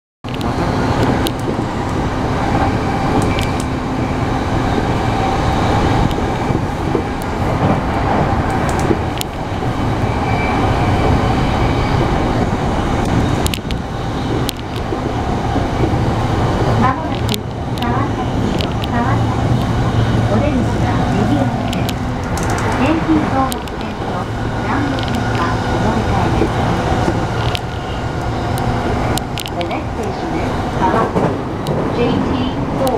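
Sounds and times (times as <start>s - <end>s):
rail clicks: 0.2s - 32.9s
train wheels rumbling on track: 0.2s - 32.9s.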